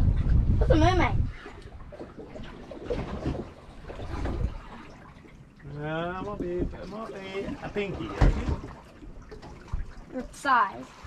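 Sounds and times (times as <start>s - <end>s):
water lapping against boat hull: 0.0s - 11.0s.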